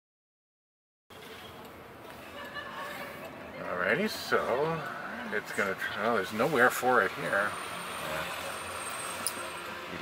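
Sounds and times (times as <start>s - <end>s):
road and tyre noise in car cabin: 3.2s - 10.0s.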